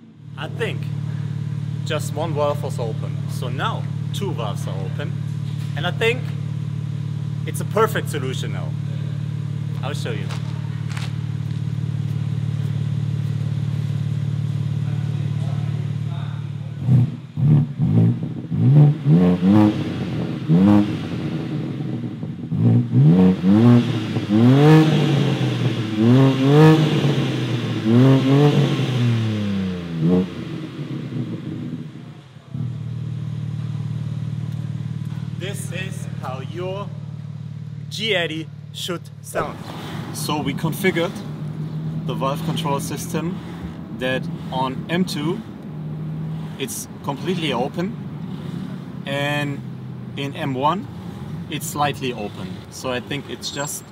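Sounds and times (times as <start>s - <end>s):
car engine idling and revving: 0.0s - 53.9s.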